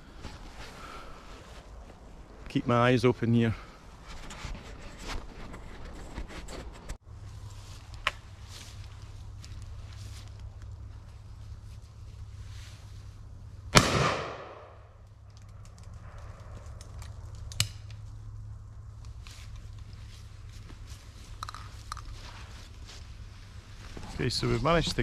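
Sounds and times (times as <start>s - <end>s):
shotgun shot with echo: 13.8s - 14.8s.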